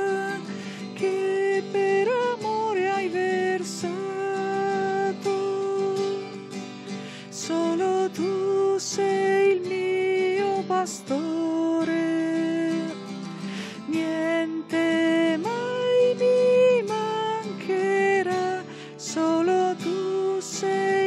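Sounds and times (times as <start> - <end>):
woman singing a hymn: 0.0 - 6.6, 7.2 - 13.0, 13.9 - 21.0
acoustic guitar: 0.0 - 21.0.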